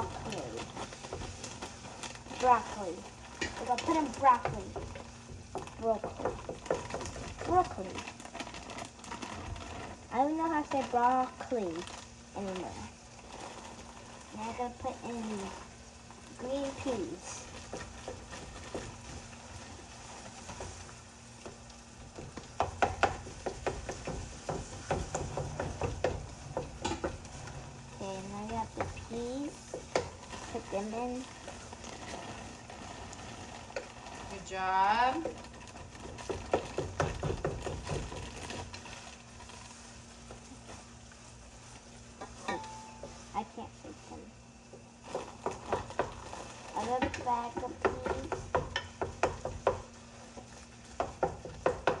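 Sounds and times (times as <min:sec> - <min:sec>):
frozen peas rattling into bowl: 0:00.0 - 0:20.8, 0:27.4 - 0:40.8
plastic bag crinkling: 0:00.0 - 0:22.0, 0:26.3 - 0:42.5.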